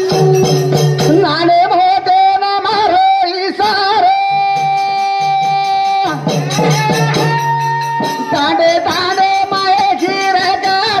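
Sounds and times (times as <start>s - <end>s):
high singing voice: 0.0s - 11.0s
light percussion: 0.0s - 11.0s.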